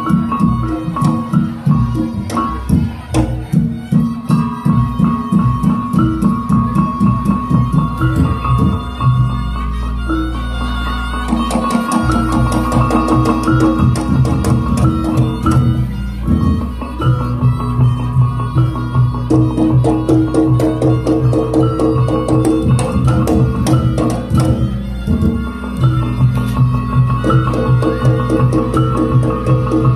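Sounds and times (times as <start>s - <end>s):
drums and percussion beat: 0.0s - 29.9s
sustained melodic lines: 0.0s - 29.9s.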